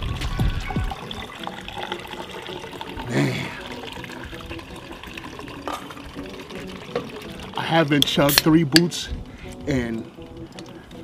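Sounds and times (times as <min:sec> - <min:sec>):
sparkling water pouring into glasses: 0:00.8 - 0:08.4.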